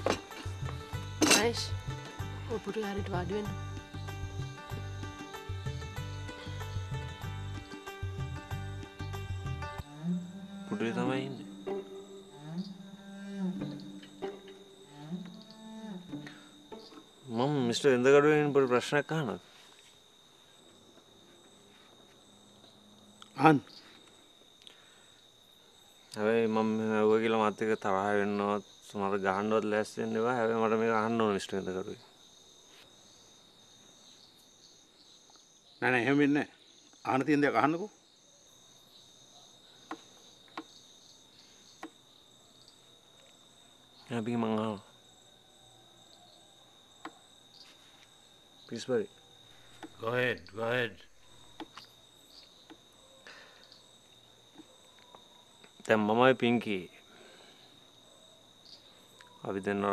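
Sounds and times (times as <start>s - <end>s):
crickets chirping: 0.0s - 59.9s
man talking: 10.8s - 11.5s, 50.0s - 51.1s.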